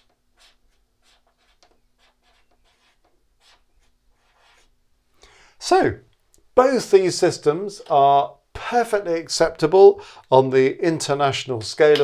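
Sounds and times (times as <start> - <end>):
marker pen writing on whiteboard: 0.0 - 4.7.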